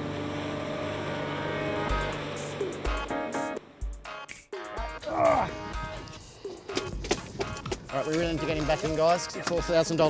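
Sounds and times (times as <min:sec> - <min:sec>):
background music: 0:00.0 - 0:10.0
person shouting: 0:05.0 - 0:05.7.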